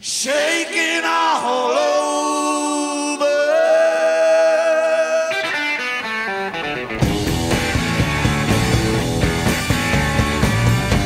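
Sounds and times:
electric guitar solo: 0:05.3 - 0:11.0
rock band playing: 0:05.4 - 0:11.0.

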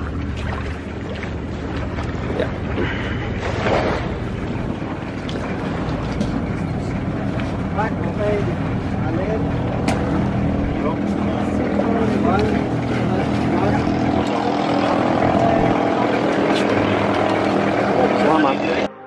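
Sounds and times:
boat engine running: 0:00.0 - 0:19.0.

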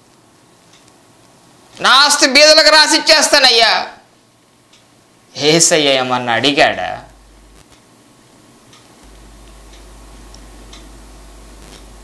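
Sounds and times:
low steady hum: 0:00.0 - 0:12.0
faint ticking: 0:08.6 - 0:12.0.

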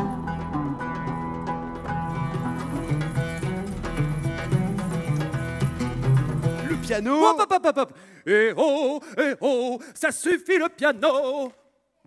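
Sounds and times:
oud plucked melody: 0:00.0 - 0:07.2.

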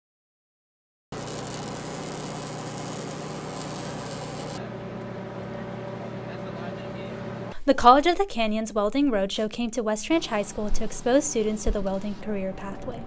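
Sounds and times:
welding arc hissing: 0:01.1 - 0:04.6
steady hum: 0:01.2 - 0:07.8.

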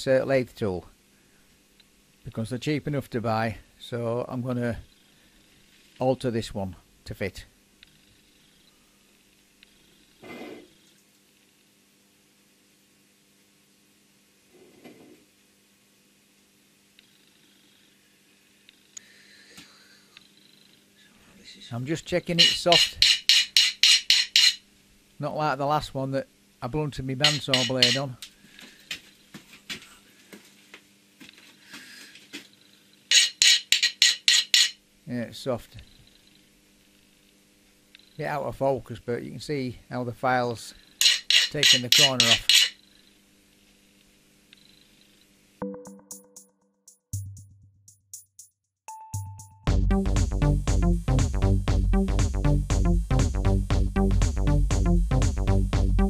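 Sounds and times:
file rasping on metal: 0:22.4 - 0:24.6, 0:27.3 - 0:28.0, 0:33.1 - 0:34.8, 0:41.0 - 0:42.8
metal scraping on table: 0:22.4 - 0:24.6, 0:27.2 - 0:28.1, 0:33.1 - 0:34.8, 0:41.0 - 0:42.8.

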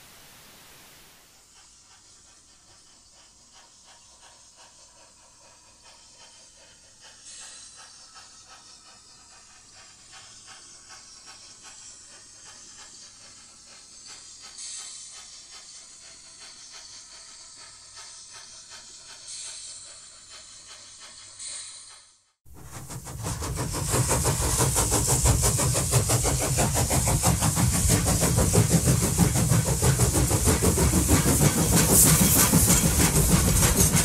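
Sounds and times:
hissing steam: 0:00.0 - 0:34.0
steam locomotive chuffing: 0:01.2 - 0:34.0.

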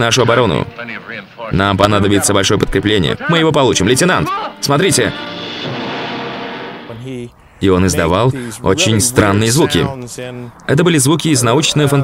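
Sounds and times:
eerie sustained orchestral chord: 0:04.4 - 0:07.2.

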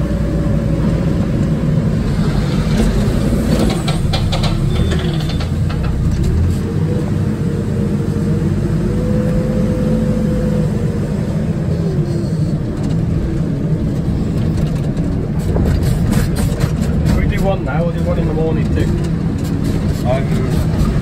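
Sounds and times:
diesel engine running under load: 0:00.0 - 0:21.0.

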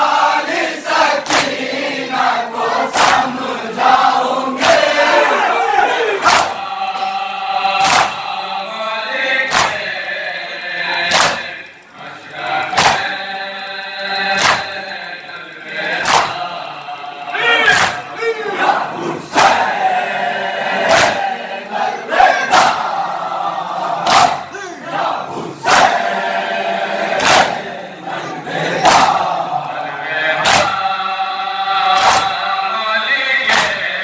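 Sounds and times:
men chanting together: 0:00.0 - 0:34.0
hands slapping chests: 0:01.2 - 0:01.6, 0:02.9 - 0:03.3, 0:06.2 - 0:06.6, 0:07.8 - 0:08.2, 0:09.5 - 0:10.0, 0:11.0 - 0:11.8, 0:12.7 - 0:13.2, 0:14.3 - 0:14.9, 0:15.9 - 0:16.5, 0:17.7 - 0:18.1, 0:24.0 - 0:24.4, 0:27.2 - 0:27.6, 0:28.8 - 0:29.3, 0:30.4 - 0:30.8, 0:31.9 - 0:32.4, 0:33.4 - 0:33.9.

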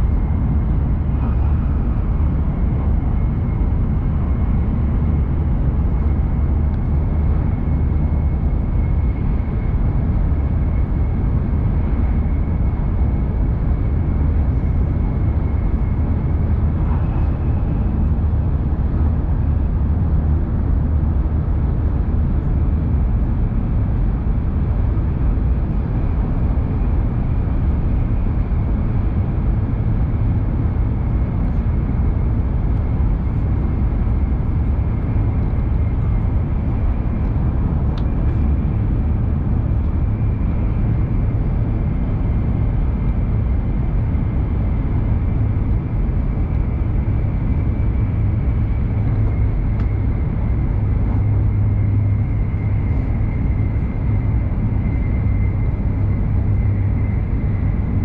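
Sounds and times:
faint high whine: 0:00.0 - 0:21.2, 0:21.8 - 0:58.0
train wheels rumbling on rail: 0:00.0 - 0:58.0.

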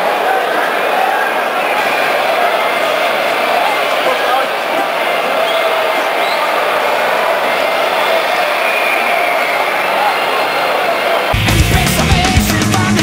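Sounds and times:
crowd chanting and singing: 0:00.0 - 0:13.0.

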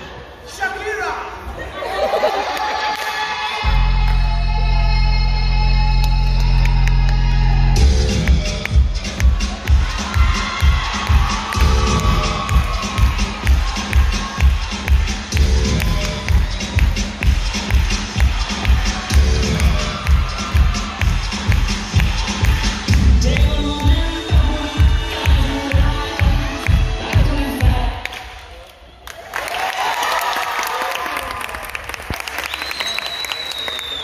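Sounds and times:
loud dance music: 0:03.2 - 0:28.5
audience cheering: 0:09.0 - 0:23.4, 0:29.0 - 0:34.0.

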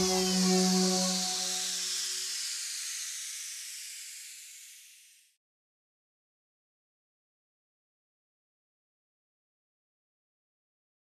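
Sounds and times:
jingle chord ringing: 0:00.0 - 0:01.8
hissing shimmer sweeping down: 0:00.0 - 0:05.3.

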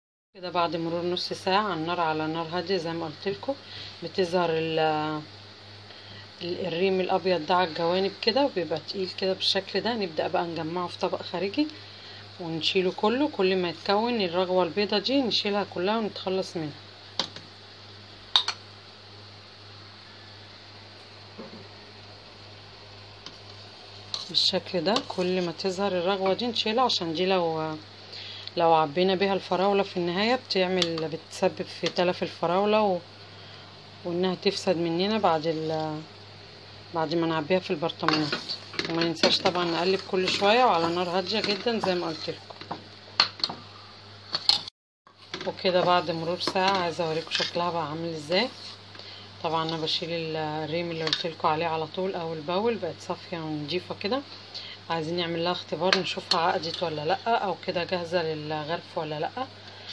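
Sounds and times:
steady low hum: 0:00.4 - 0:59.9.

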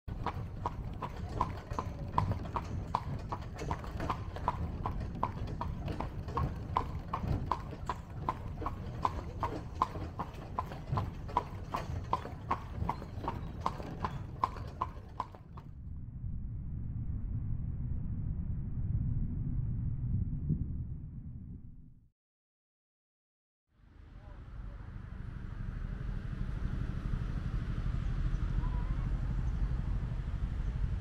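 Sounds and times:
horse hooves on paved road: 0:00.1 - 0:15.7
low carriage rumble: 0:00.1 - 0:21.8, 0:24.2 - 0:31.0.

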